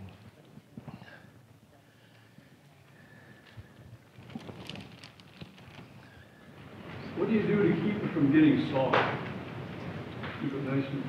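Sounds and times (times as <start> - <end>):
plastic bag crinkling: 4.2 - 6.1.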